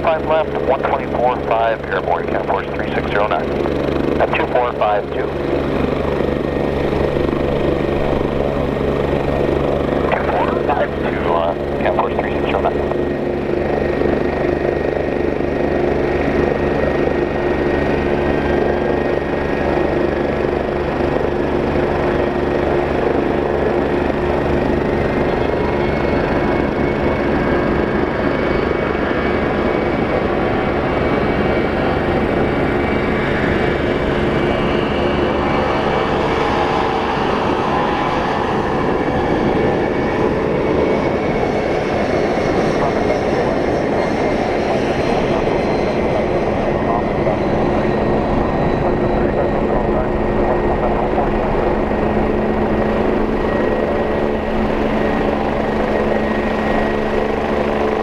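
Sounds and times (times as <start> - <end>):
jet engine roar with whine: 0.0 - 58.0.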